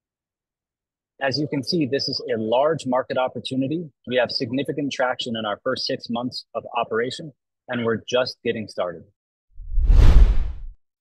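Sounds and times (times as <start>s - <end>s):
deep whoosh with low rumble: 9.6s - 10.7s.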